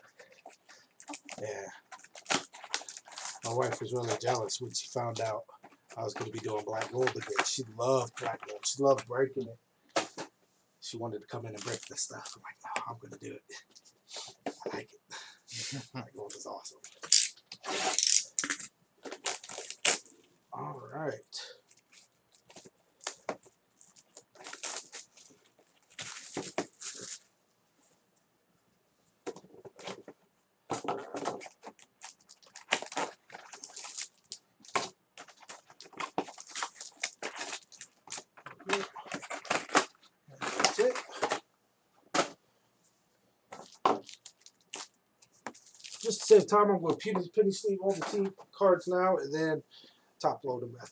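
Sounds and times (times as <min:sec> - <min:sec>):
card packs crinkling: 0:00.0 - 0:09.1, 0:11.4 - 0:12.9, 0:16.4 - 0:20.3, 0:21.4 - 0:27.2, 0:30.7 - 0:41.4, 0:43.5 - 0:48.3.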